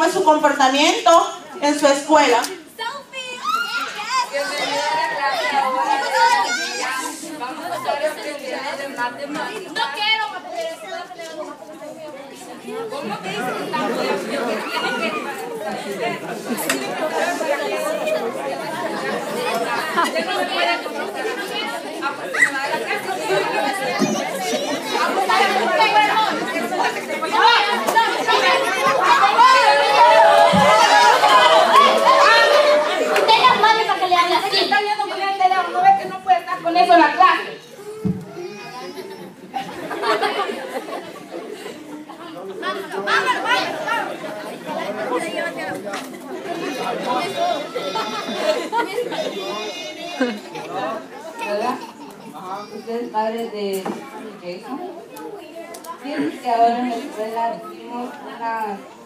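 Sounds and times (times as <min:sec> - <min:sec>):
children chattering: 0:00.0 - 0:59.0.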